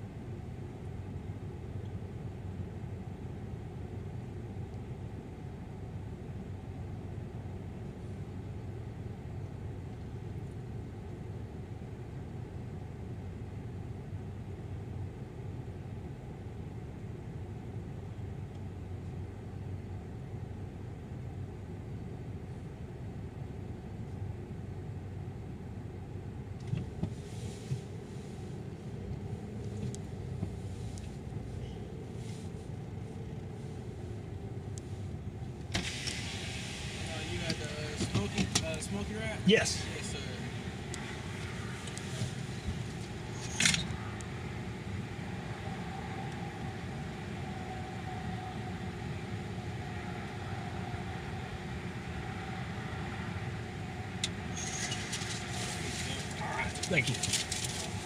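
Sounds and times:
outside noise: 0.0 - 58.0
car engine idling: 27.2 - 49.9, 53.4 - 58.0
power window going down: 35.7 - 38.5.

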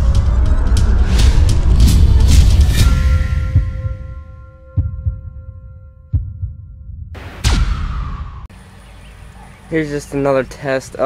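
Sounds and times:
deep booming hits: 0.6 - 8.6.

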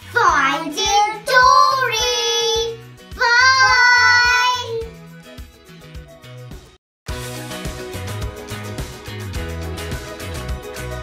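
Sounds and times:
background music with steady beat: 0.0 - 11.0
children singing long notes: 0.3 - 4.8.

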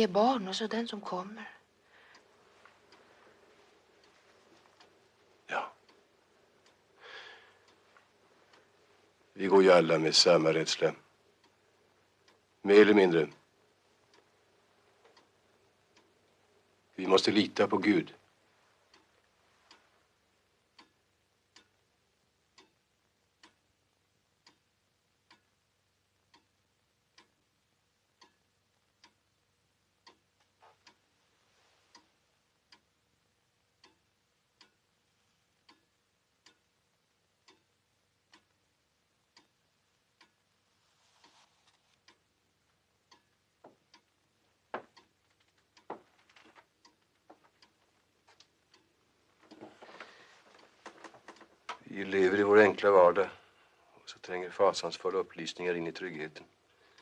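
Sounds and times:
clock ticking: 0.0 - 57.0
soft rustle: 1.0 - 9.4, 30.4 - 32.4, 40.6 - 42.2.

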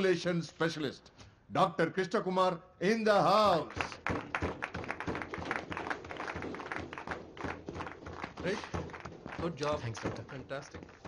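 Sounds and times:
people clapping: 3.4 - 11.0.

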